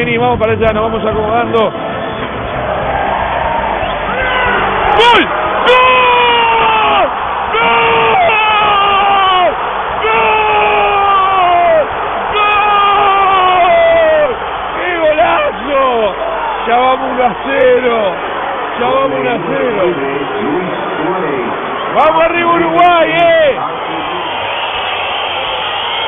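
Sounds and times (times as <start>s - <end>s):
stadium crowd cheering: 0.1s - 26.0s
man shouting drawn-out cries: 4.2s - 14.4s.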